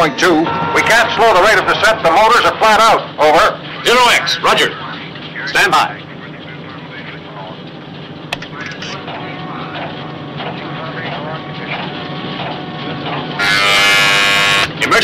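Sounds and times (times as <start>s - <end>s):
faint voices: 0.0s - 15.0s
low steady hum: 0.0s - 15.0s
harsh electric buzzer: 0.2s - 2.1s, 13.4s - 14.9s.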